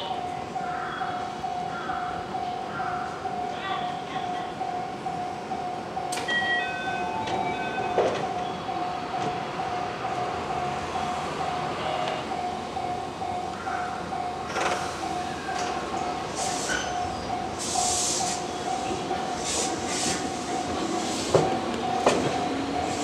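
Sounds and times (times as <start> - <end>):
train doors sliding shut: 6.1 - 8.4, 14.4 - 23.0
air hiss bursts: 16.4 - 16.9, 17.6 - 18.4, 19.4 - 20.4.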